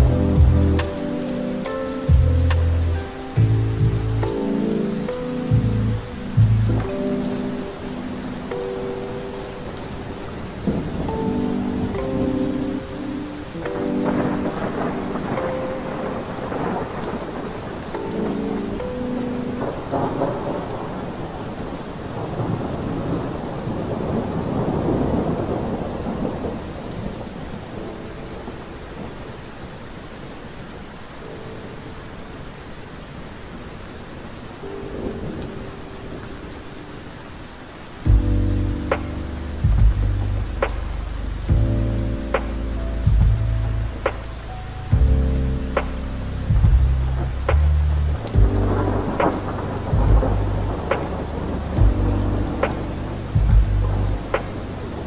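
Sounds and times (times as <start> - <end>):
deep bass notes: 0.0 - 1.0, 2.1 - 4.4, 5.5 - 7.0, 38.1 - 55.0
rolling thunder: 0.0 - 29.3, 38.0 - 55.0
mellow keyboard chords: 0.0 - 29.6, 34.6 - 55.0
steady rain: 0.0 - 55.0.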